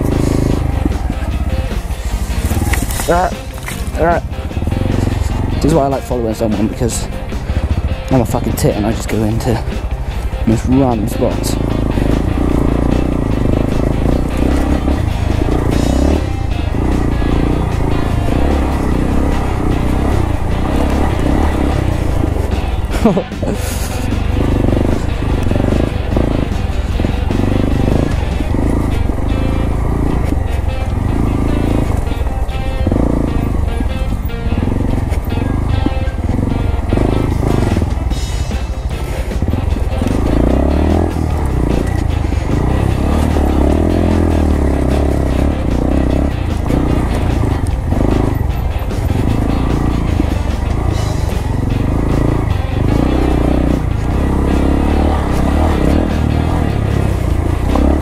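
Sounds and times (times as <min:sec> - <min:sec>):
background music: 0:00.0 - 0:58.0
motorcycle engine running: 0:00.0 - 0:58.0.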